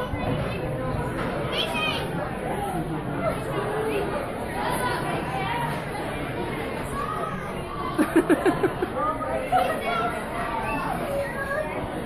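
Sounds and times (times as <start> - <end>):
diners chattering: 0.0 - 12.0.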